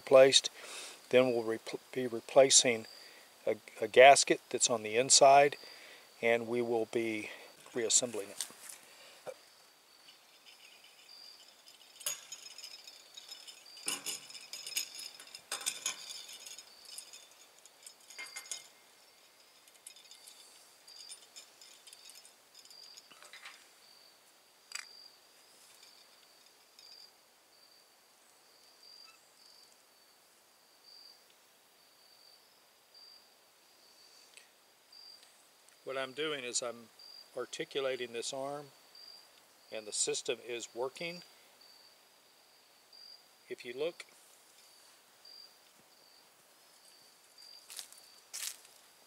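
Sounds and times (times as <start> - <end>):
insects chirping: 0.1 - 49.0
metallic clinks and taps: 10.0 - 23.7, 25.6 - 27.1.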